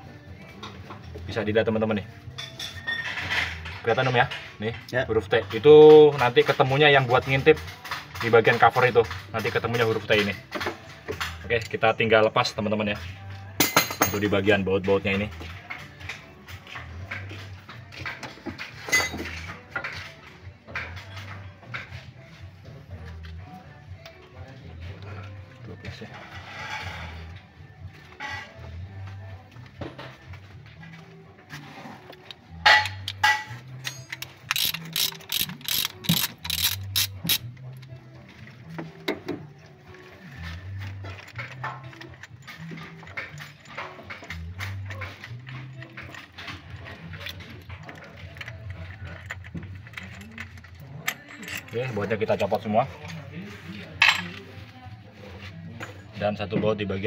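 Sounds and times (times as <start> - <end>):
background music: 0.0 - 57.0
ratchet wrench clicking: 32.7 - 37.5.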